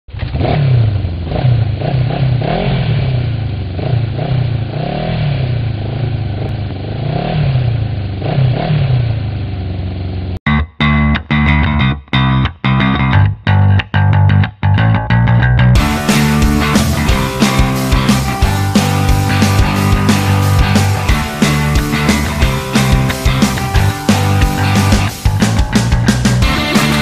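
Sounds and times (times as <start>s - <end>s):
motorcycle engine revving: 0.1s - 10.4s, 15.8s - 27.0s
rock guitar music stabs: 10.5s - 27.0s.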